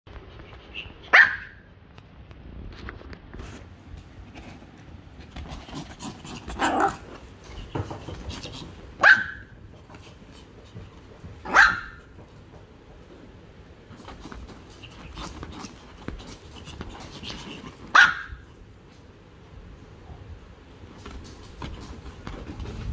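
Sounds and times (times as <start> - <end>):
dog barking sharply: 1.1 - 1.6, 9.0 - 9.5, 11.4 - 12.0, 17.9 - 18.4
dog scratching a leather cushion: 4.0 - 9.0, 13.9 - 17.9.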